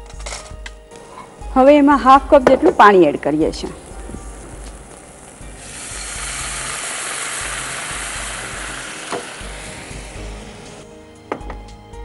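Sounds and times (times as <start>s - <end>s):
background music: 0.0s - 12.0s
vegetables sizzling in pan: 3.1s - 10.9s
water poured into pan: 5.5s - 10.1s.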